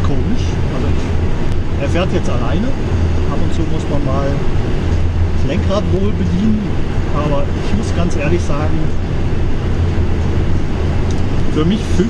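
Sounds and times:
road and tyre noise in car cabin: 0.0 - 12.0.

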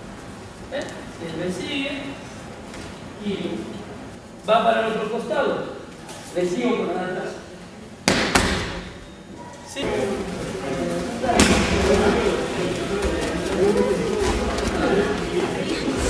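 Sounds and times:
voices talking: 9.7 - 16.0.

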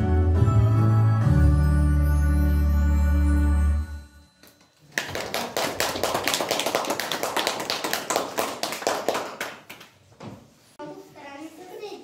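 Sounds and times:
audience clapping: 4.5 - 10.0.

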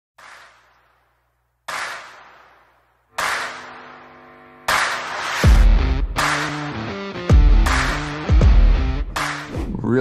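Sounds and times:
sustained ringing chord: 3.5 - 4.7.

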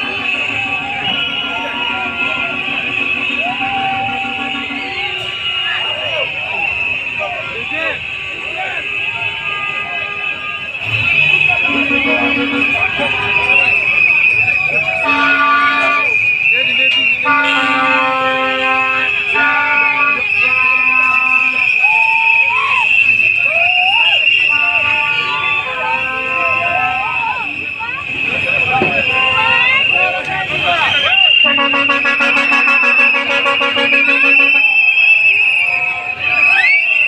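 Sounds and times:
steady high-pitched tone: 0.0 - 5.2
vuvuzela horn blasts: 0.0 - 7.3, 7.9 - 23.4, 24.2 - 36.2
crowd noise: 0.0 - 37.0.

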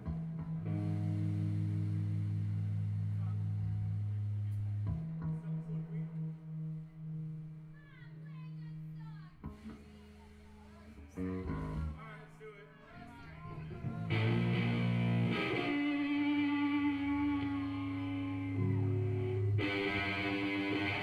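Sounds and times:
electric guitar notes and strum: 0.0 - 5.4, 13.8 - 21.0
electric bass notes: 0.0 - 7.7, 9.4 - 12.1, 13.4 - 21.0.

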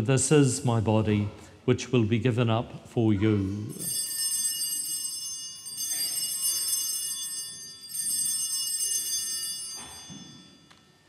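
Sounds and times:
altar bell ringing: 3.7 - 11.0.

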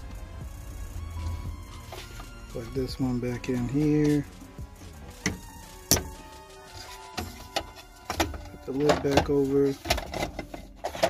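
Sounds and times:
metal cover being handled: 5.3 - 11.0.

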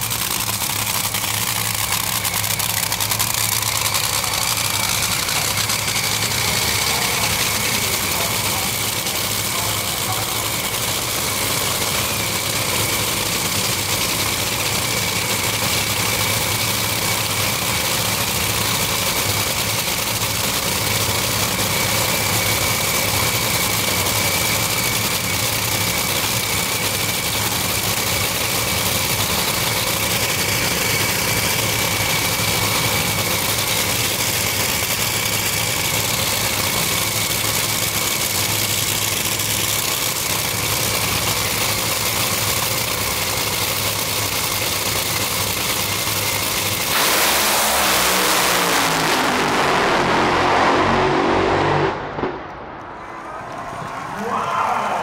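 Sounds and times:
dragster engines idling: 0.0 - 53.0.

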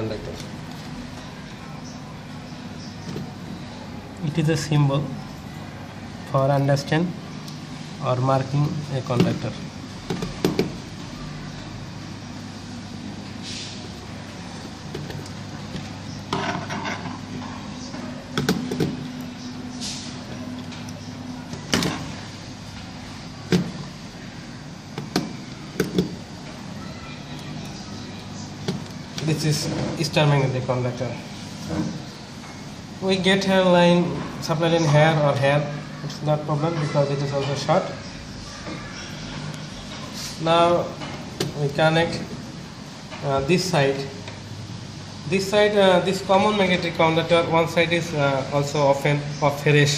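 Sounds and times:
steady background hum: 0.0 - 49.9.

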